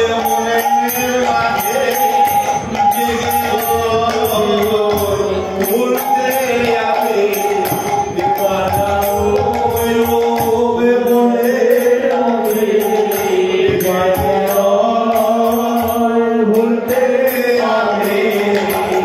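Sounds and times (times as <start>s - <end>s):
hand cymbals striking: 0.0s - 19.0s
men singing devotional song: 0.0s - 19.0s
sustained harmonium: 0.0s - 19.0s.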